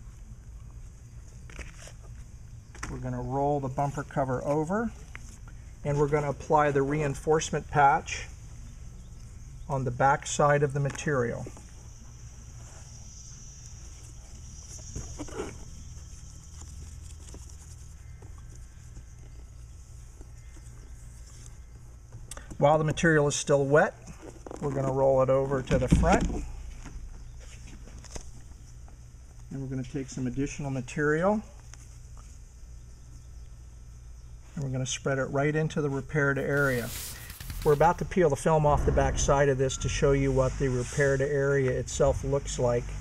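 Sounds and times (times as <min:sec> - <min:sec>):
low steady hum: 0:00.0 - 0:43.0
plastic spreader scraping filler: 0:36.4 - 0:38.0.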